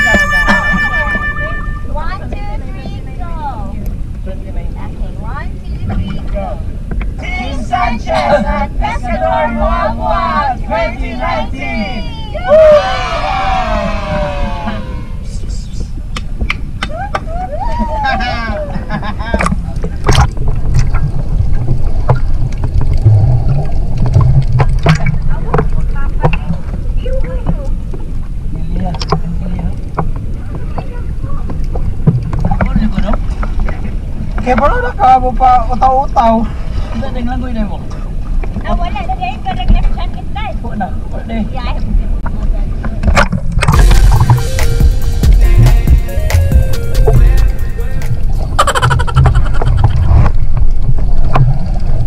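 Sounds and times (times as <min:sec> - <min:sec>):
people calling out: 0:00.0 - 0:02.4, 0:07.2 - 0:15.5, 0:16.8 - 0:18.9
low rumble: 0:11.8 - 0:28.6, 0:43.7 - 0:52.0
underwater churning noise: 0:15.9 - 0:28.5, 0:43.2 - 0:52.0
sea water sloshing and splashing: 0:19.2 - 0:28.5.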